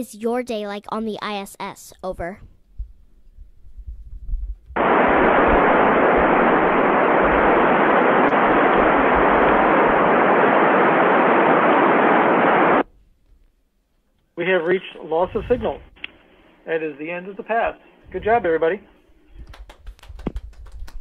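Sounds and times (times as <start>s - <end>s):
radio static hiss: 4.8s - 12.9s, 14.4s - 19.0s.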